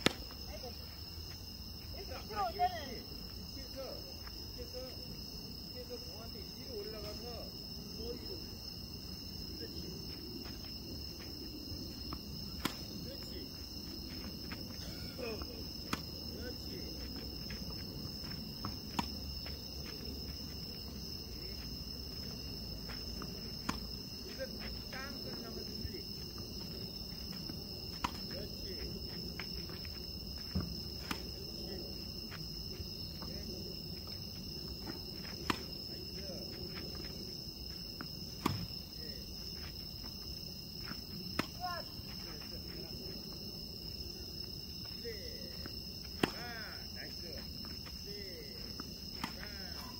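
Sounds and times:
crickets chirping: 0.0s - 49.9s.

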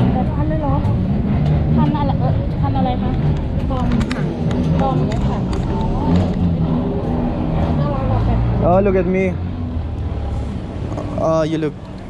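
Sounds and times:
people talking: 0.0s - 1.0s, 1.7s - 6.4s, 7.7s - 8.5s
street traffic rumble: 0.0s - 12.0s.

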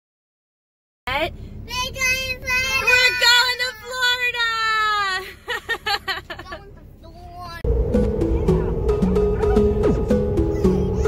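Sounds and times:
low car cabin rumble: 1.1s - 11.0s.

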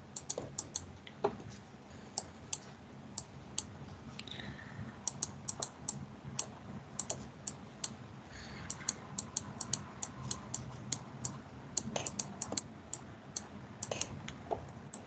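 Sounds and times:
faint low steady hum: 0.0s - 15.0s
computer input clicking: 0.1s - 0.9s, 5.1s - 7.2s, 8.6s - 14.1s.

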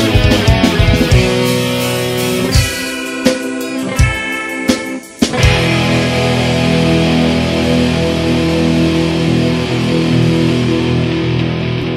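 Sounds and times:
punk rock with electric guitars: 0.0s - 11.9s.

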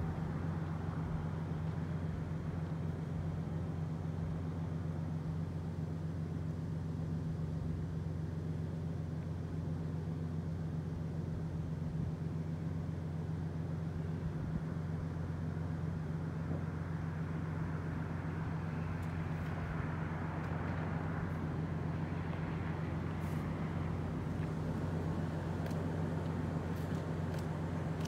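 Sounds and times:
road traffic: 0.0s - 28.0s
steady low hum: 0.0s - 28.0s.

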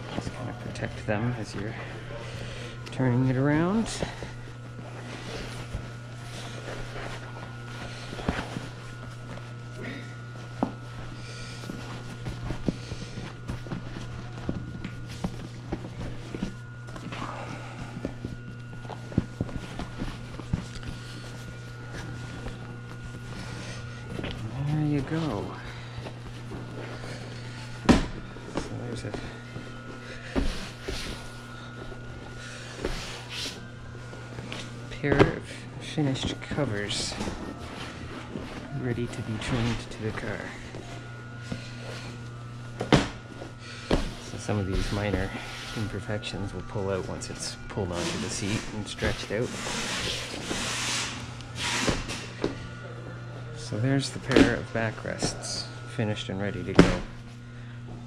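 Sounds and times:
seat cover rustling and crinkling: 0.0s - 52.8s
steady low hum: 0.0s - 58.0s.

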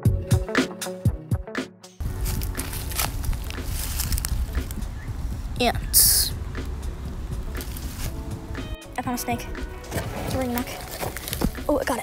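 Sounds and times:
intro music with a beat: 0.0s - 9.9s
footsteps in dry leaves: 2.0s - 5.5s, 7.1s - 8.3s, 10.4s - 11.8s.

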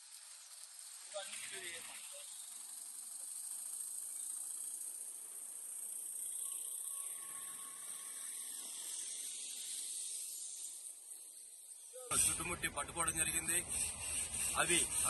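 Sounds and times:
steady high-pitched hiss: 0.0s - 15.0s.

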